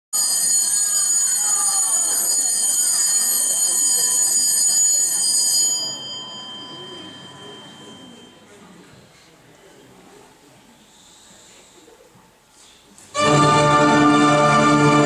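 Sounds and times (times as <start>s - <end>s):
electric bell ringing shrilly: 0.2s - 8.4s.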